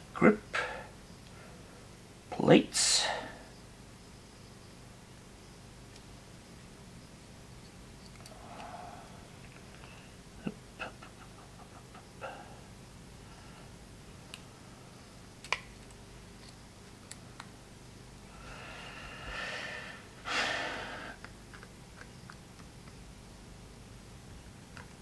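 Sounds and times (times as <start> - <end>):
small parts clicking and tapping: 7.6 - 8.7, 21.2 - 23.0, 24.7 - 25.0.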